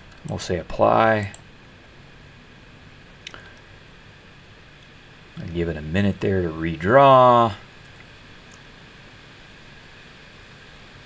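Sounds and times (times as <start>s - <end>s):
low hiss of room tone: 0.0s - 11.0s.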